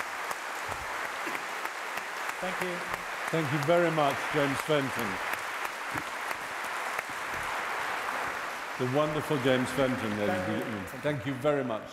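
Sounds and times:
audience applauding: 0.0 - 11.4.

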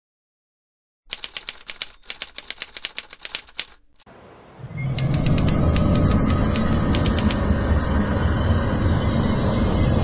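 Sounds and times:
rapid mechanical clicks: 1.1 - 4.0, 5.0 - 7.5.

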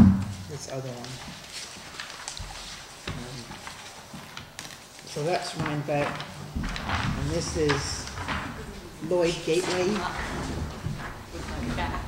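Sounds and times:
paper rustling: 0.4 - 12.0.

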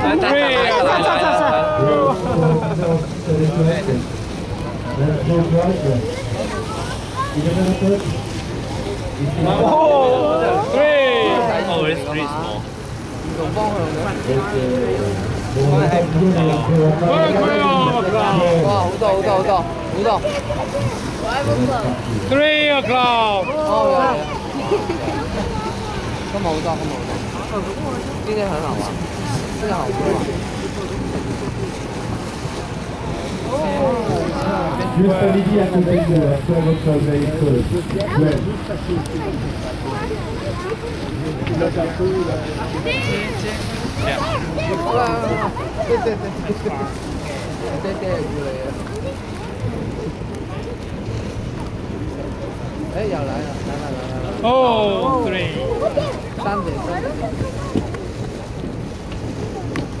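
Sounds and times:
voices chattering: 0.0 - 60.0
wind on microphone: 23.5 - 60.0.

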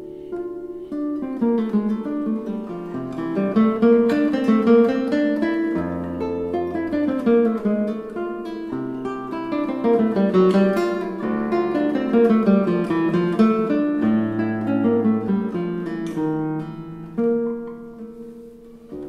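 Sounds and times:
classical guitar fingerstyle: 0.0 - 19.0.

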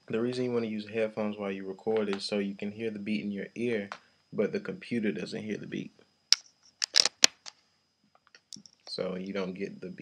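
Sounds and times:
handling clicks and rustles: 6.3 - 7.6.

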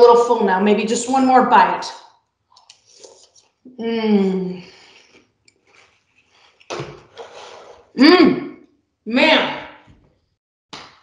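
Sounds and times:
person chewing cereal: 4.7 - 7.9.

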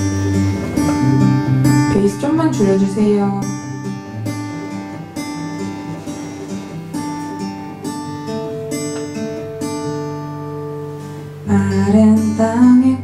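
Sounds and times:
acoustic guitar strummed chords: 0.0 - 13.0.

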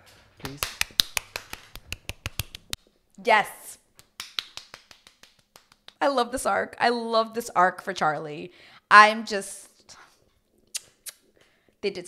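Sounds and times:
person clapping hands quickly: 0.4 - 2.8, 4.0 - 6.0.

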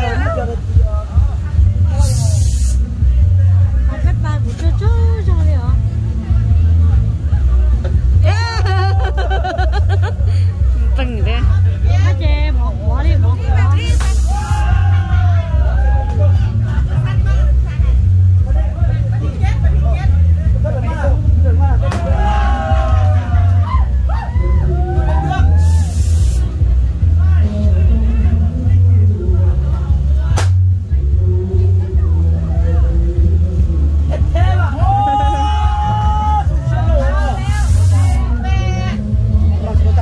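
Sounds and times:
crowd hubbub: 0.0 - 40.0
deep pulsing bass: 0.0 - 40.0
people talking: 0.0 - 40.0
voices: 0.0 - 40.0
short burst of hissing: 2.0 - 2.8, 13.9 - 14.6, 25.6 - 26.5, 37.3 - 38.2.

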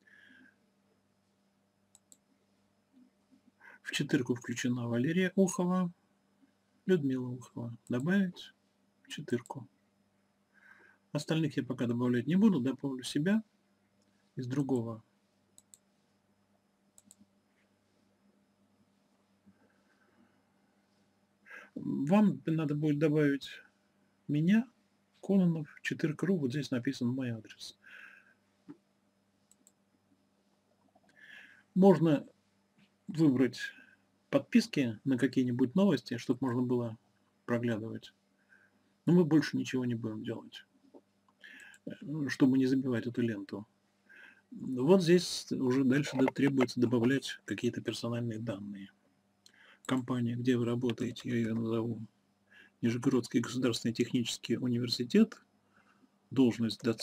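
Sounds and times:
low electrical hum: 0.0 - 57.0
computer mouse clicks: 1.9 - 2.2, 15.6 - 15.9, 17.0 - 17.3, 29.5 - 29.8.

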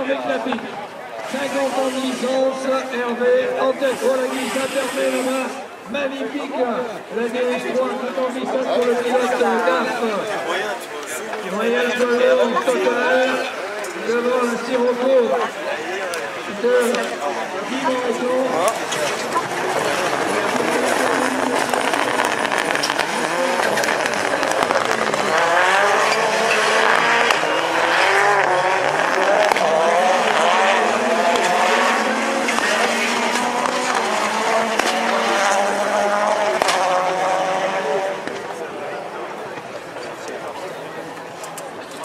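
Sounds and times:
rally car engines revving: 0.0 - 42.0.

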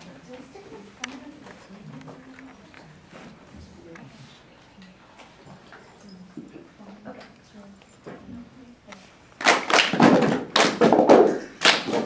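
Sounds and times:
soft voices: 0.0 - 9.2.

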